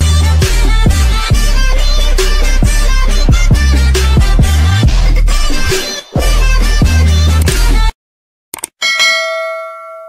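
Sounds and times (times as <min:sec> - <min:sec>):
notification bell ding: 0:08.8 - 0:10.0.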